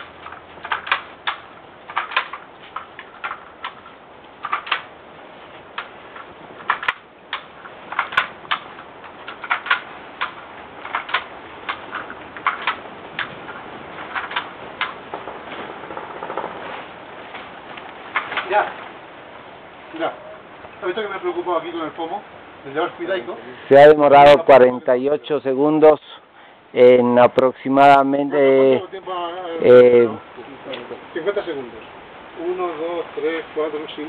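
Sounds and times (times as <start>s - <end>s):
sharp clicks of tying tool: 0.0s - 5.0s, 5.7s - 15.1s.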